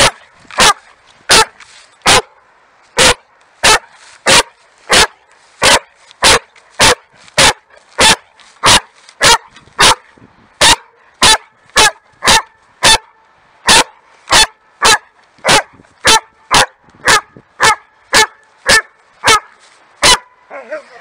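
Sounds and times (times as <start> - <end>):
dog barking: 0.0 - 2.3, 3.0 - 13.1, 13.7 - 20.3.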